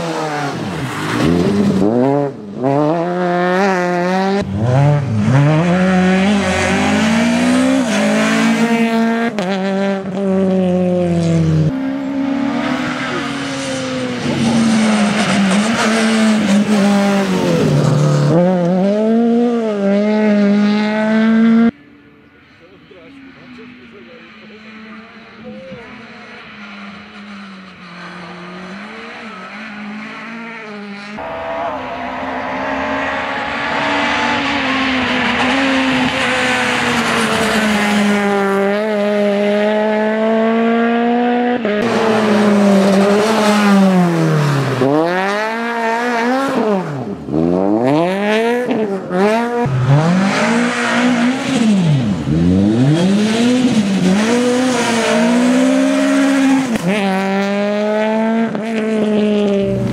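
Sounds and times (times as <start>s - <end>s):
rally car engine at high revs: 0.0s - 21.8s, 23.2s - 59.9s.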